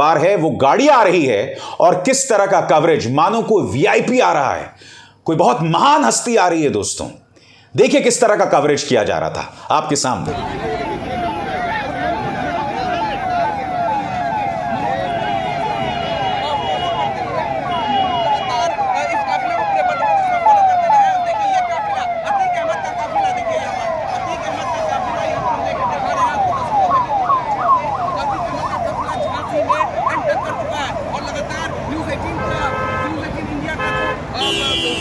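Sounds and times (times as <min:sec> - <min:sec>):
vehicle siren yelping: 0:10.3 - 0:35.0.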